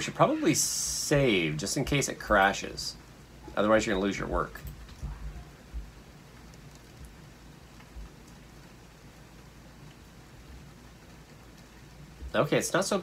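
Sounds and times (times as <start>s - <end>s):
steady low hum: 0.0s - 13.0s.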